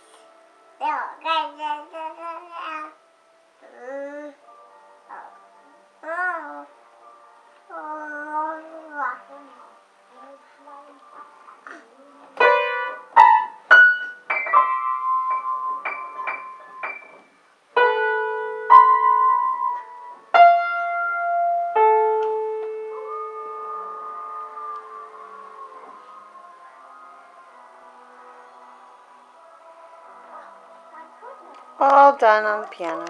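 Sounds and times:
piano notes struck haphazardly: 0:12.4 - 0:25.8.

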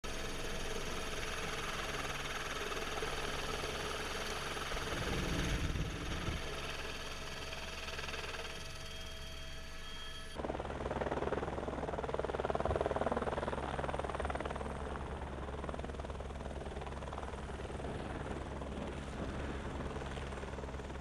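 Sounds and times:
helicopter engine and rotor: 0:00.0 - 0:21.0.

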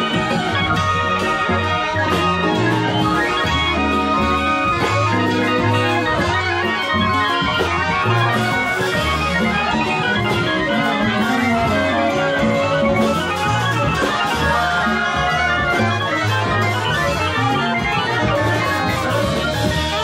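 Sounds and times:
saxophones and trumpets playing jazz: 0:00.0 - 0:20.0
upright bass walking line: 0:00.0 - 0:20.0.

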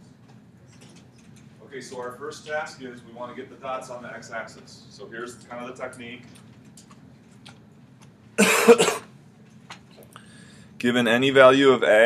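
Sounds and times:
man coughing: 0:08.4 - 0:09.1.

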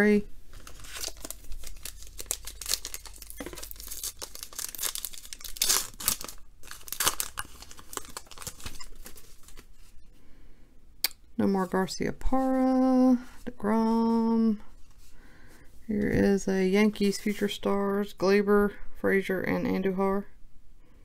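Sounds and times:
wrapper tearing and crinkling: 0:00.5 - 0:09.8.

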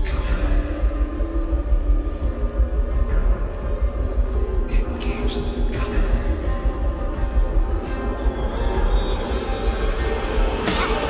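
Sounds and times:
pulsing bass rumble: 0:00.0 - 0:11.0
sustained synthesizer tones: 0:00.0 - 0:11.0.

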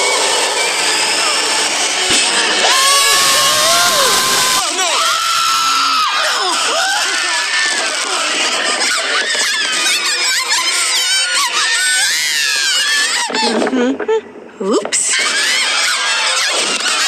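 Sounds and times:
electric blender running: 0:00.0 - 0:10.9
high-pitched cartoon voices screaming: 0:00.2 - 0:13.7, 0:15.0 - 0:17.0.

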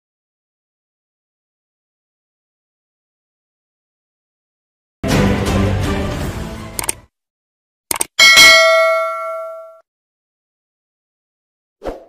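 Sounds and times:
mouse clicks: 0:06.8 - 0:07.0, 0:07.9 - 0:08.1
bright bell ding: 0:08.2 - 0:09.8.

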